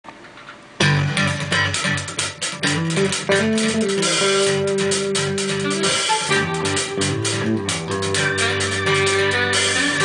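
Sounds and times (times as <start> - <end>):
band music with drums and guitars: 0.8 - 10.0.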